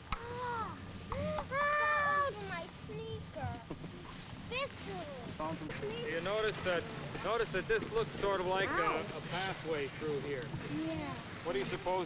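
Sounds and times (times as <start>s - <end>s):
children calling and chattering: 0.0s - 11.6s
low steady hum: 0.0s - 12.0s.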